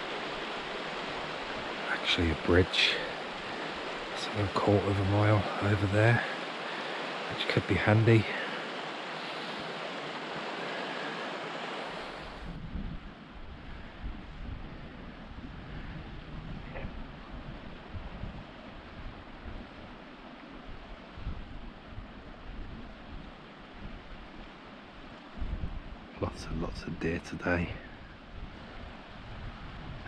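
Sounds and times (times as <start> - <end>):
stream rushing: 0.0 - 30.0
wind buffeting microphone: 7.9 - 30.0.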